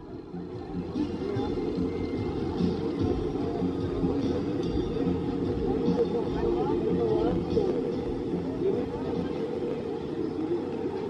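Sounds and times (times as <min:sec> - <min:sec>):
crowd of visitors: 0:00.0 - 0:11.0
music: 0:00.0 - 0:11.0.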